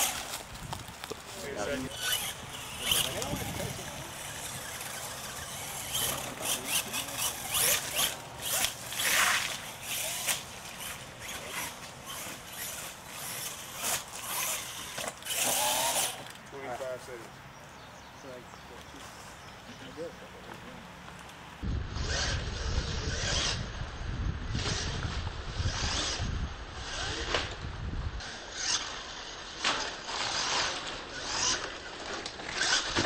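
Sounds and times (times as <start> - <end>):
electric motors whining: 0.0 - 17.1, 20.0 - 33.0.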